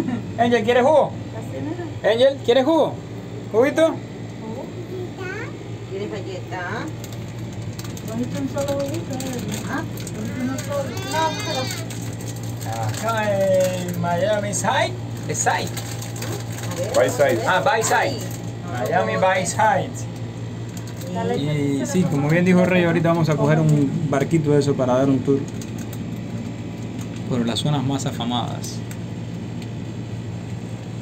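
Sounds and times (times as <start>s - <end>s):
low mechanical hum: 0.0s - 31.0s.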